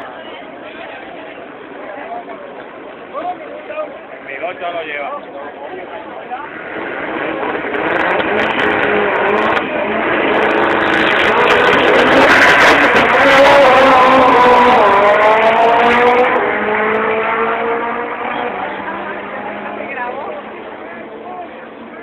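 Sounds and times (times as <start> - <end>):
drag racing cars accelerating: 5.8 - 22.0.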